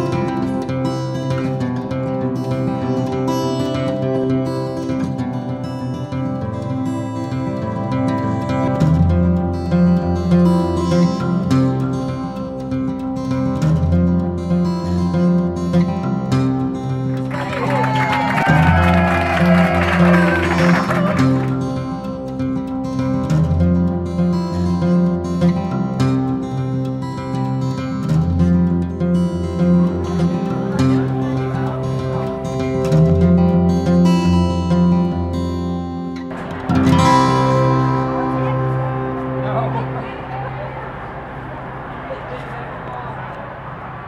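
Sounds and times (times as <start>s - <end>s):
acoustic guitar music: 0.0s - 44.0s
voices: 17.2s - 22.0s, 29.4s - 34.8s, 36.3s - 44.0s.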